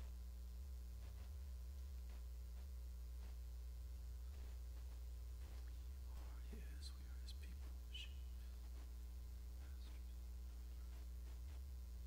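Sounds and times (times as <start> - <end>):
steady low hum: 0.0 - 12.0
person whispering: 6.0 - 8.6, 9.6 - 10.2.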